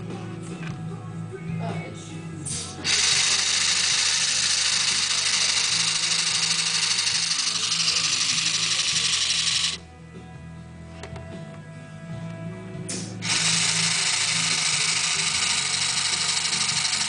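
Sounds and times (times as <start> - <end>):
pump motor whirring: 2.8 - 9.8, 13.2 - 17.0.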